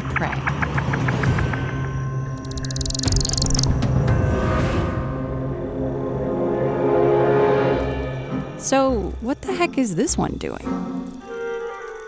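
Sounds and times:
dark background music drone: 0:00.0 - 0:12.0
bat echolocation click buzz: 0:02.4 - 0:03.8, 0:08.9 - 0:12.0.

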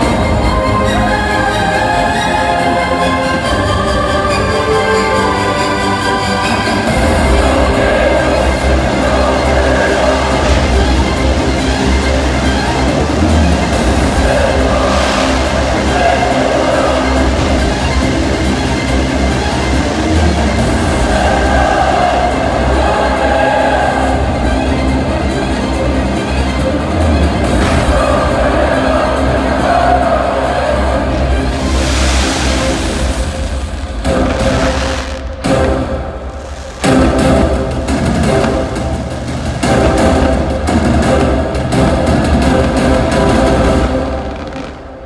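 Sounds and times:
loud show music: 0:00.0 - 0:45.0
fireworks rumble and crackle: 0:06.9 - 0:21.5, 0:30.8 - 0:45.0
sharp firework bangs: 0:31.6 - 0:40.4.

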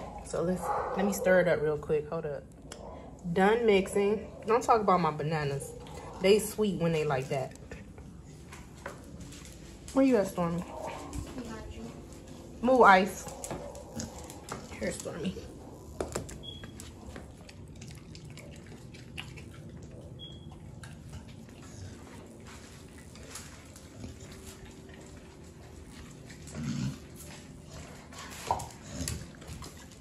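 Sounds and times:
dogs making low vocal sounds: 0:00.0 - 0:01.8, 0:02.4 - 0:30.0.

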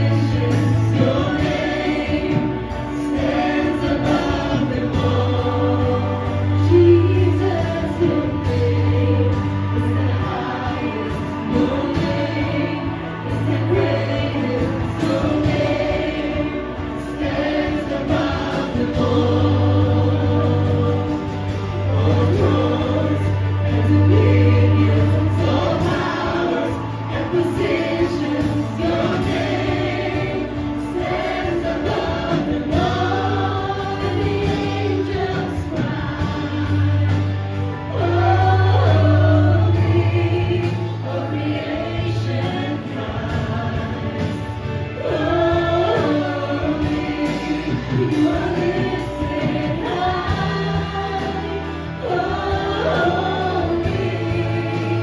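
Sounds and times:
band accompaniment with deep bass: 0:00.0 - 0:55.0
electric guitar: 0:00.0 - 0:55.0
group singing worship song: 0:00.0 - 0:55.0
keyboard: 0:00.0 - 0:55.0.

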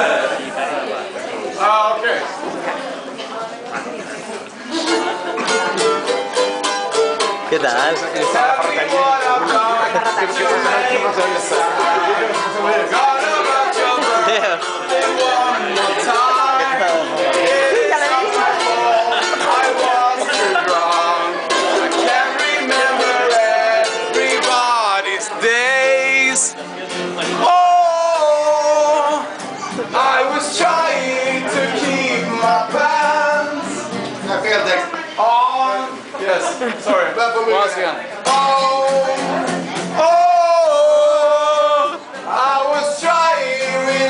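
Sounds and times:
acoustic guitar strumming: 0:04.7 - 0:36.1, 0:38.0 - 0:44.0
person singing: 0:08.0 - 0:26.6, 0:27.2 - 0:34.0, 0:38.2 - 0:44.0.

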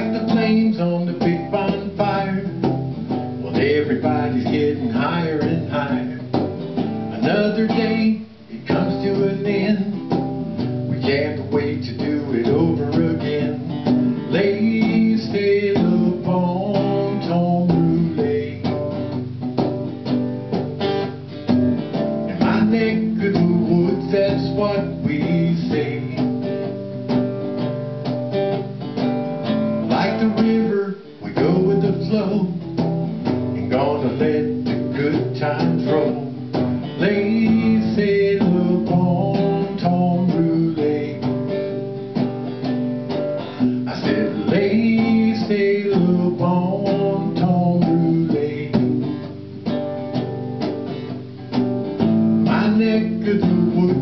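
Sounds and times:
strummed and plucked guitar: 0:00.0 - 0:54.0.

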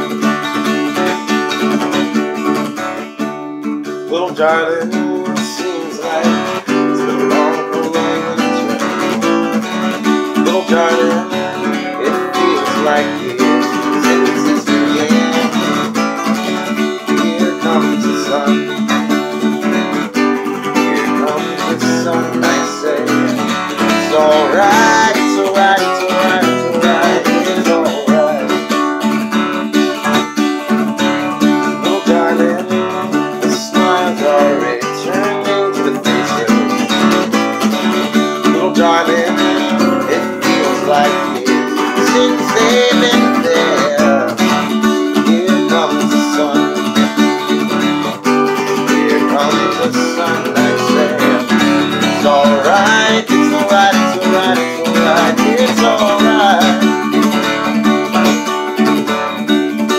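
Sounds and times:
acoustic guitar strummed: 0:00.0 - 0:59.9
man singing: 0:03.8 - 0:30.3, 0:31.0 - 0:59.9.

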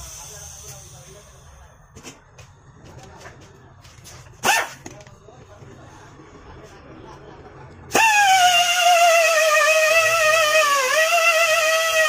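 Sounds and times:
low background noise: 0:00.0 - 0:08.0.

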